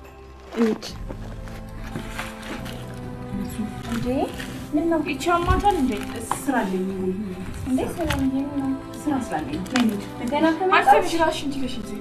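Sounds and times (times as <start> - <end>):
film score music sustained tones: 0.0 - 12.0.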